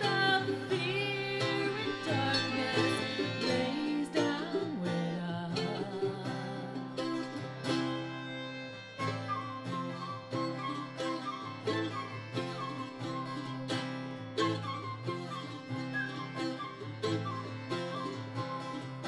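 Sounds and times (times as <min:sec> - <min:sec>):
accordion: 0:00.0 - 0:19.0
strummed acoustic guitars: 0:00.0 - 0:19.0
wavering melody line: 0:09.1 - 0:19.0.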